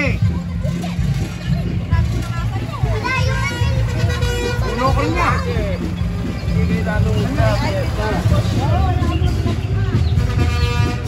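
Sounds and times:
motorcycle engine rumble: 0.0s - 11.0s
people's voices: 0.0s - 11.0s.

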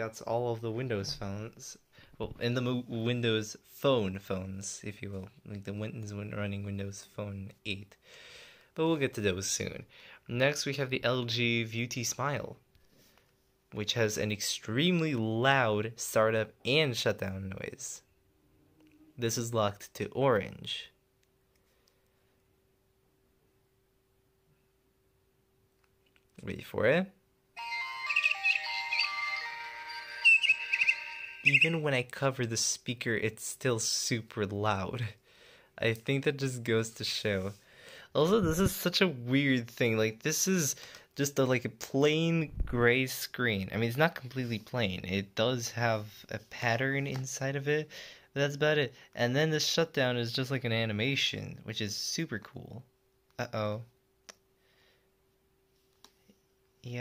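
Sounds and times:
faint steady hum: 0.0s - 57.0s
person speaking: 13.7s - 21.0s, 26.2s - 35.2s, 35.8s - 53.9s
phone startup melody: 27.6s - 31.8s.

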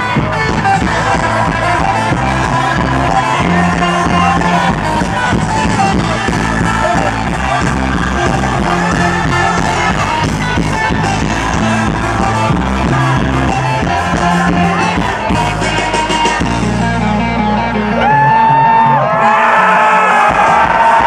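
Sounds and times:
live rock band playing: 0.0s - 21.0s.

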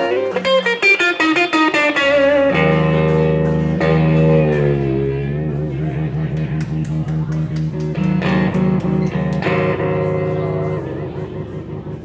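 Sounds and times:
electric guitar blues lead: 0.0s - 12.0s.

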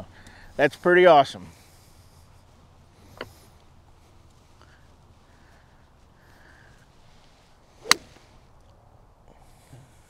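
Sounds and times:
golf club swish: 7.1s - 8.4s
golf club striking ball: 7.8s - 8.3s.

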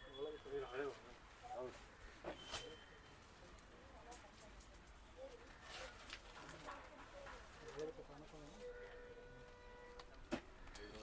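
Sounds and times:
faint indistinct voices: 0.0s - 11.0s.

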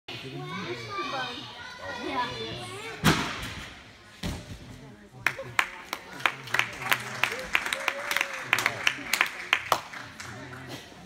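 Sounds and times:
children chattering and calling: 0.1s - 3.0s.

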